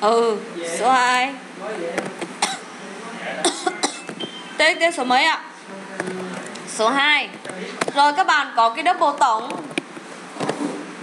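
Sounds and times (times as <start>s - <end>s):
woman coughing: 2.4s - 2.7s, 3.4s - 4.2s.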